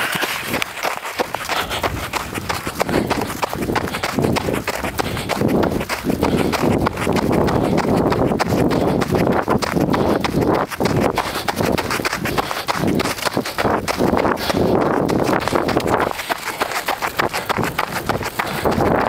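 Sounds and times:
running footsteps on snow: 0.0s - 19.0s.

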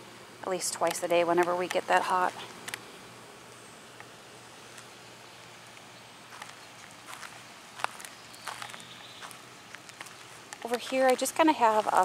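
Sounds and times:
footsteps on wood-chip mulch: 5.7s - 12.0s.

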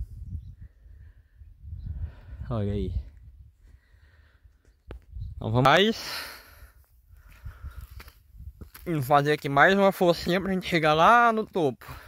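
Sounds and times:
man breathing out heavily: 3.6s - 4.5s, 6.0s - 8.0s.

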